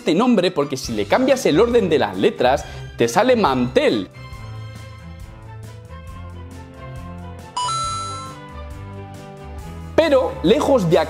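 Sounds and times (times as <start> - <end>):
background music with steady beat: 0.0 - 11.0
bright two-note chime: 7.6 - 8.4.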